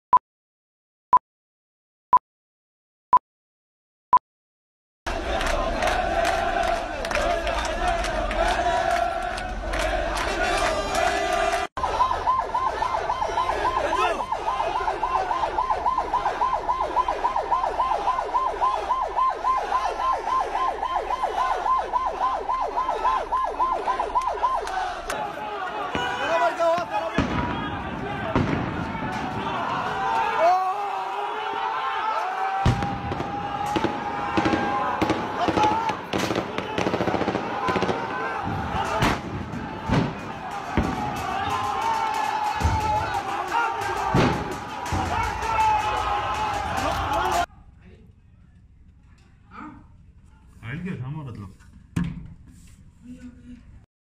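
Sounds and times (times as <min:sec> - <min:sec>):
crowd of protesters shouting: 0:05.1 - 0:47.5
warbling vehicle siren: 0:11.8 - 0:25.2.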